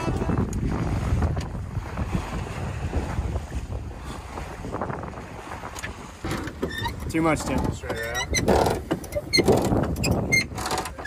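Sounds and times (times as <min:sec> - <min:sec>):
water washing along hull: 0:00.0 - 0:11.0
wind on microphone: 0:00.0 - 0:11.0.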